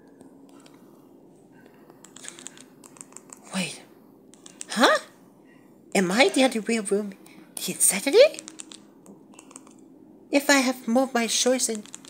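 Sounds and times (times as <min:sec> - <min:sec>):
remote buttons clicking: 0:02.0 - 0:03.4, 0:04.3 - 0:04.7.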